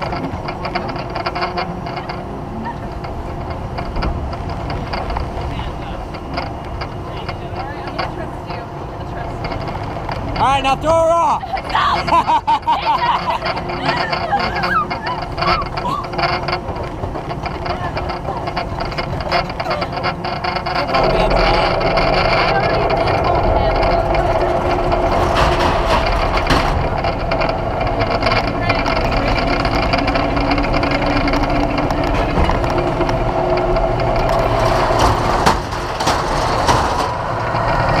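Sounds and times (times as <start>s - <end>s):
mechanical bull motor humming: 0.0s - 38.0s.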